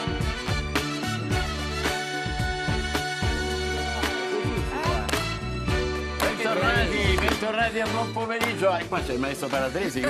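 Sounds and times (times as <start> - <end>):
instrumental theme music with beat: 0.0 - 10.0.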